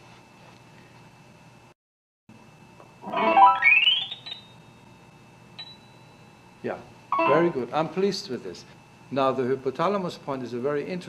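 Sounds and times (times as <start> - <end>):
electronic tones rising in pitch: 3.1 - 4.2, 7.2 - 7.6.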